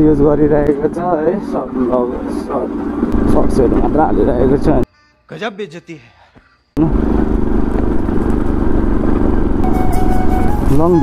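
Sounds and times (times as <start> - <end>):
motorcycle engine drone: 0.0 - 4.8, 6.8 - 11.0.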